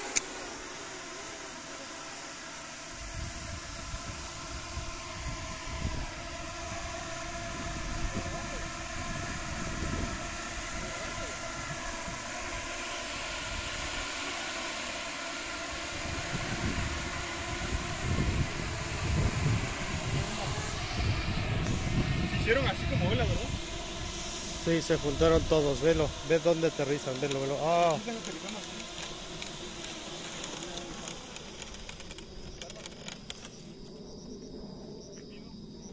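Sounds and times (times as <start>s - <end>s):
steady hiss: 0.0s - 35.0s
crickets chirping: 0.0s - 35.9s
drones buzzing hum: 0.0s - 35.9s
scattered clicks: 27.0s - 33.8s.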